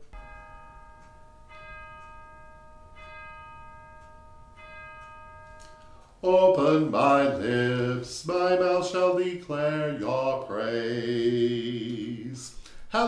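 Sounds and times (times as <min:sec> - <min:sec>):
bell ringing: 0:00.0 - 0:08.0.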